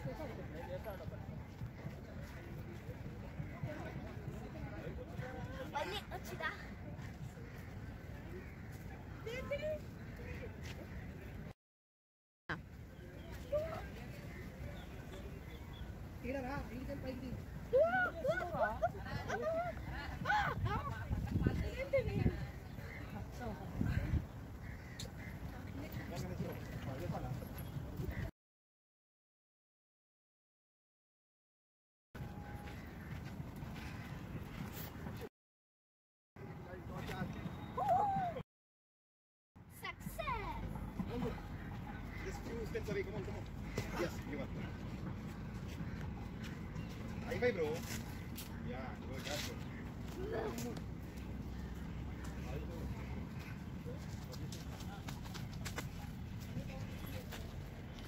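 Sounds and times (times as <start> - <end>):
faint children's voices: 5.1 - 11.1, 39.7 - 42.2.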